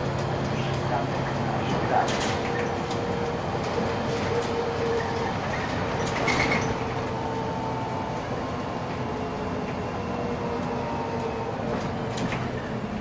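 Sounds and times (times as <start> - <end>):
bus drivetrain and road hum: 0.0 - 13.0
bus whine: 0.0 - 13.0
clatters in bus cabin: 0.0 - 13.0.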